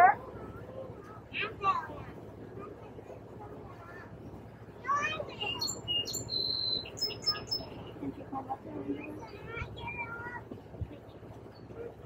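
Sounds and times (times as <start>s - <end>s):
songbird whistling: 5.4s - 7.7s.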